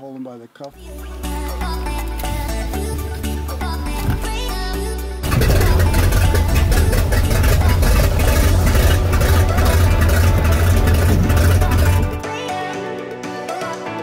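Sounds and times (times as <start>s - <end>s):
background music: 0.7s - 14.0s
float plane engine and propeller: 5.2s - 12.2s.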